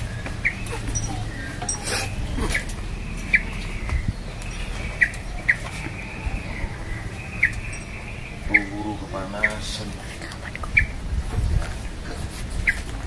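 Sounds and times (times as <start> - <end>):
bird chirping: 0.0 - 9.9.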